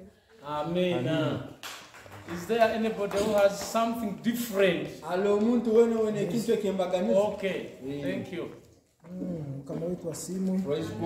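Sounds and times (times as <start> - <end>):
man talking emphatically: 0.4 - 1.5, 2.3 - 8.6.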